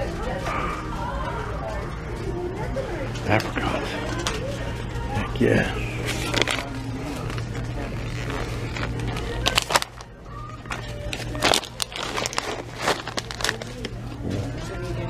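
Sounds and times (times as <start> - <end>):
faint background music: 0.0 - 15.0.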